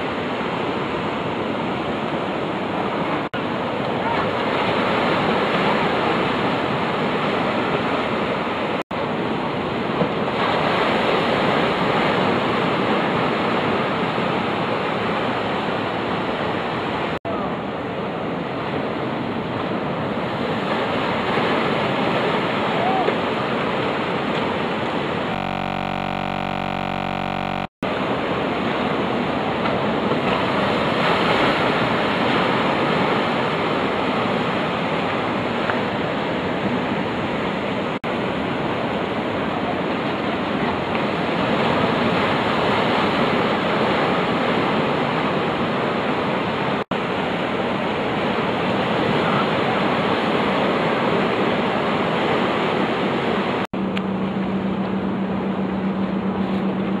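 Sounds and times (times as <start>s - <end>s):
ocean surf breaking: 0.0s - 57.0s.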